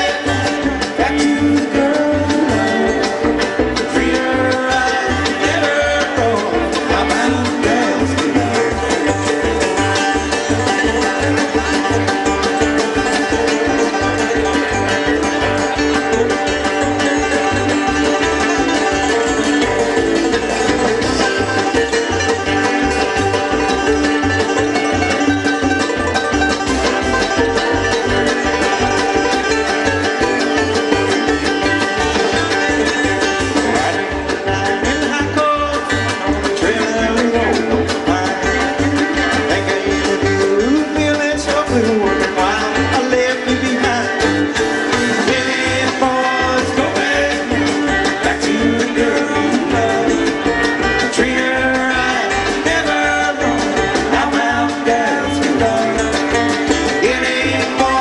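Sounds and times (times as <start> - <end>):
acoustic guitar: 0.0 - 58.0
banjo rolls: 0.0 - 58.0
drums: 0.0 - 58.0
fiddle: 0.0 - 58.0
mandolin: 0.0 - 58.0
upright bass pulsing: 0.0 - 58.0.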